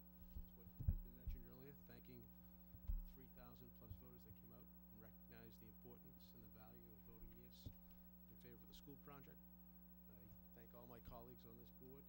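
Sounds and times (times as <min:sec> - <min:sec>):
low electrical hum: 0:00.0 - 0:12.0
thumps on a microphone: 0:00.2 - 0:01.7, 0:02.7 - 0:03.2.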